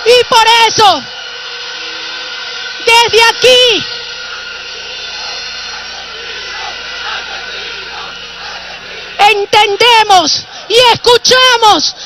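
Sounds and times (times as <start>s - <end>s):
steady hum and hiss: 0.0s - 12.0s.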